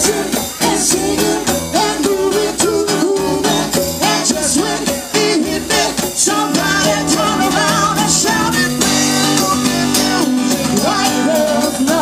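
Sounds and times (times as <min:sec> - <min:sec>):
drums and congas: 0:00.0 - 0:12.0
live rock band playing: 0:00.0 - 0:12.0
strummed acoustic guitar: 0:00.0 - 0:12.0
woman singing into microphone: 0:00.0 - 0:12.0.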